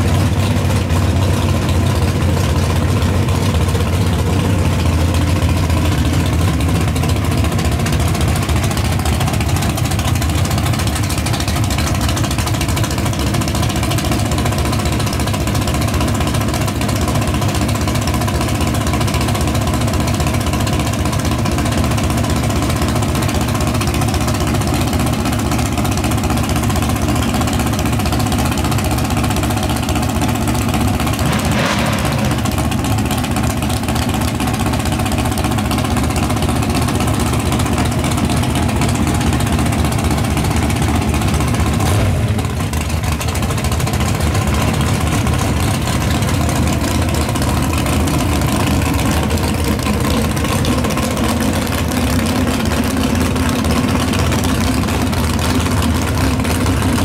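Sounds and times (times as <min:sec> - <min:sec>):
drag car engine idling: 0:00.0 - 0:57.0.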